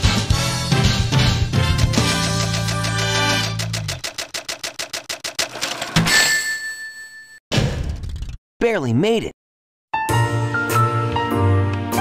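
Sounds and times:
rapid ticking: 0:02.0 - 0:05.6
bright ding: 0:06.0 - 0:07.4.

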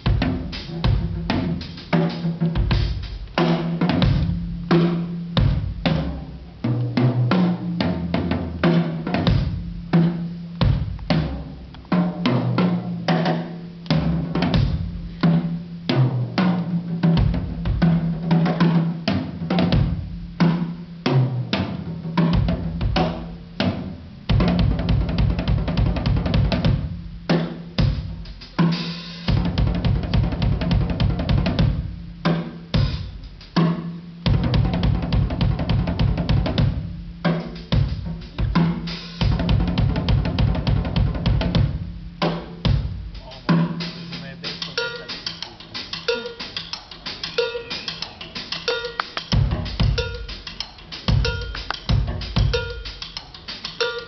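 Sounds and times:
bass drum: 0:00.0 - 0:54.0
drum kit solo: 0:00.0 - 0:54.0.

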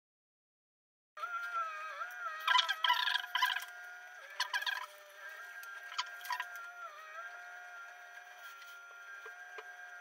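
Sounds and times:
excavator hydraulic whine: 0:01.2 - 0:10.0.

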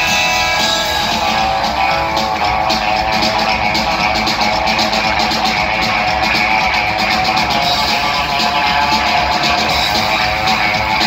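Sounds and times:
fast clicking rhythm: 0:00.0 - 0:11.0
live rockabilly band: 0:00.0 - 0:11.0
upright bass: 0:00.0 - 0:11.0.

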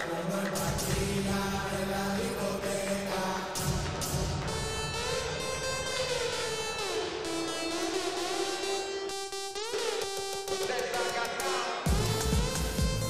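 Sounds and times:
sliding synthesizer tones: 0:00.0 - 0:10.9
pulsing bass beat: 0:00.3 - 0:07.0, 0:11.9 - 0:13.0.

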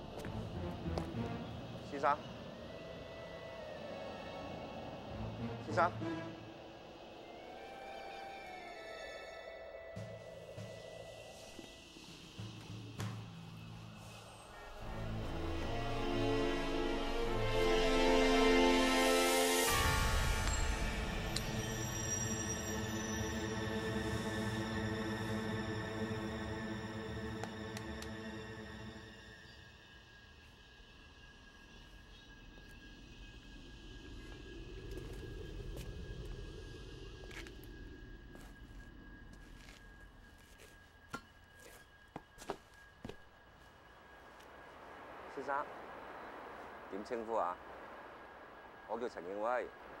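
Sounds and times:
low city rumble: 0:00.0 - 0:07.8, 0:19.8 - 0:50.0.

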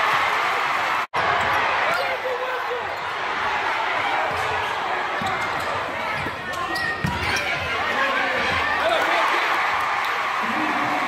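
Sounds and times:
crowd chatter: 0:01.2 - 0:11.0.

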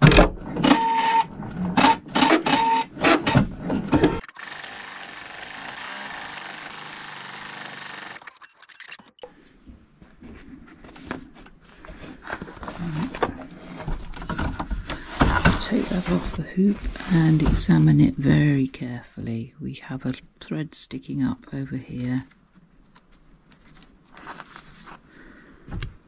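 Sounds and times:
embroidery machine stitching: 0:04.2 - 0:09.1.

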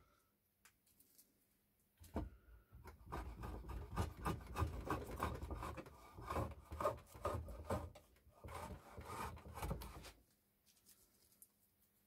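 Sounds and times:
hand plane scraping wood: 0:02.9 - 0:10.2.

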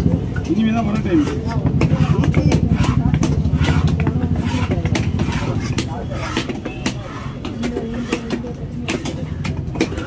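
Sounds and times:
voices: 0:00.0 - 0:10.0
cleaver chopping fish on wood: 0:00.8 - 0:10.0.

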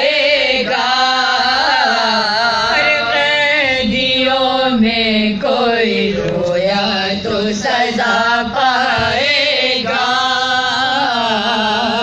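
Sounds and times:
women chanting a lament: 0:00.0 - 0:12.0.

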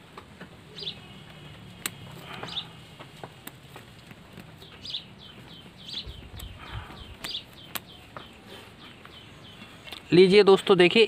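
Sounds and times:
handling rumble: 0:00.0 - 0:09.8
bird chirping: 0:00.6 - 0:03.5, 0:04.3 - 0:10.3.

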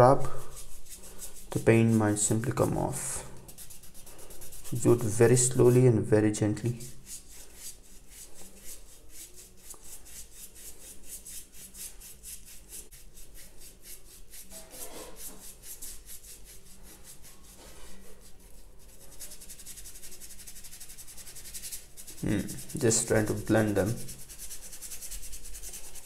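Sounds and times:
paintbrush scratching on paper: 0:00.0 - 0:26.0.

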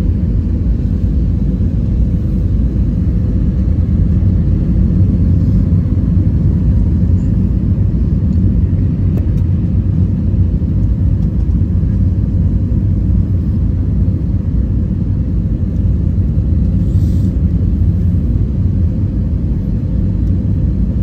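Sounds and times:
airflow noise: 0:00.0 - 0:20.1
jet engine rumble in cabin: 0:00.0 - 0:21.0.

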